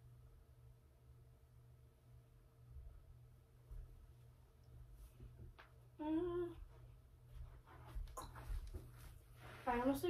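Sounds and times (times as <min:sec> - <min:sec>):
soft rustles and knocks: 0:03.6 - 0:05.9, 0:06.6 - 0:10.0
girl humming: 0:06.0 - 0:06.7.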